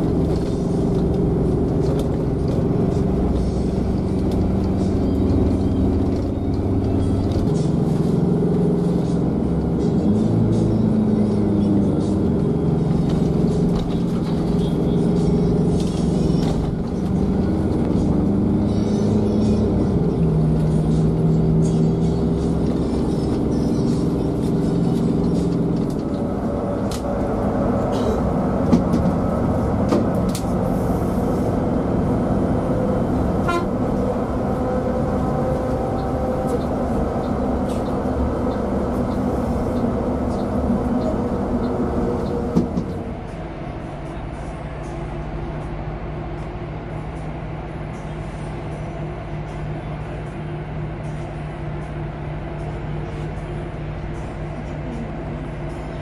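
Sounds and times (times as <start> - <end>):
bus cabin noise: 0.0 - 56.0.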